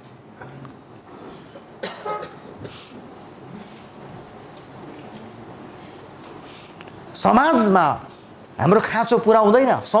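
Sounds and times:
person coughing: 1.8s - 2.9s.

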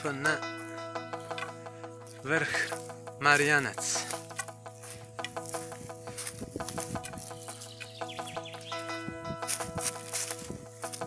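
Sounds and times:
footsteps crunching dry leaves: 2.0s - 11.0s.

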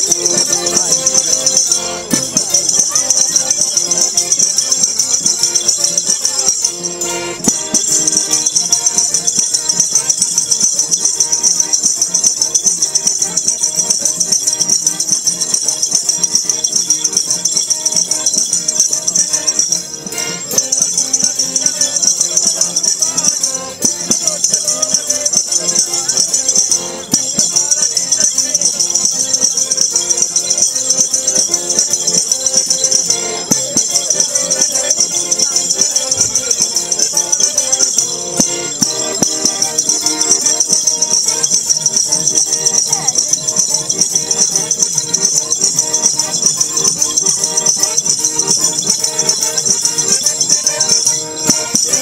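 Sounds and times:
button accordion: 0.0s - 52.0s
elderly man singing: 0.0s - 52.0s
mandolin: 0.0s - 52.0s
tambourine jingles: 0.0s - 52.0s.

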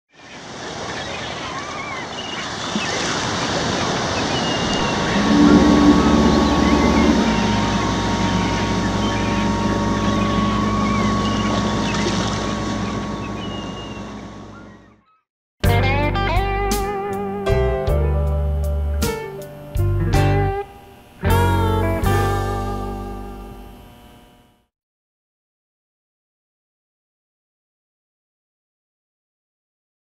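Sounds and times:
ocean surf: 0.2s - 13.2s
short high calls: 4.6s - 14.2s
deep steady tone: 4.6s - 14.6s, 17.6s - 24.4s.

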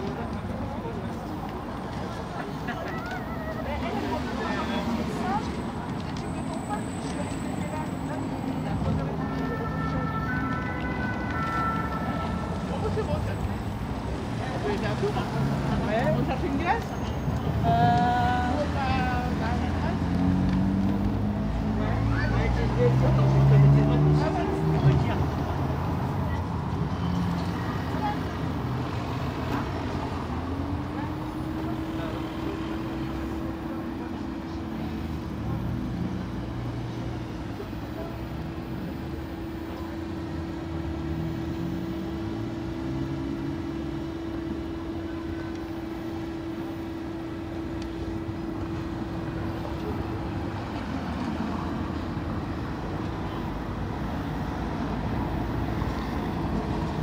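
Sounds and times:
car engines and road noise: 0.0s - 57.0s
steady engine hum: 3.2s - 57.0s.

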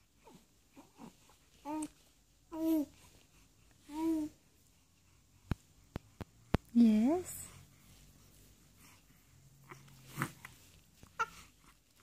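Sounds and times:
baby cooing: 2.5s - 2.9s, 9.6s - 11.6s.

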